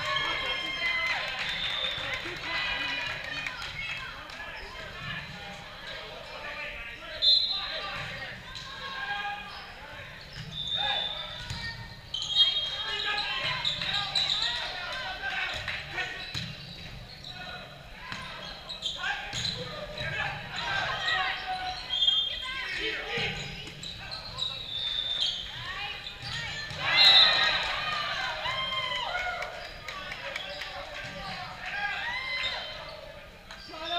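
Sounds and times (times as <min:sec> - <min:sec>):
players calling out: 0:00.0 - 0:33.9
sneakers squeaking on court: 0:09.4 - 0:14.8, 0:16.0 - 0:27.6.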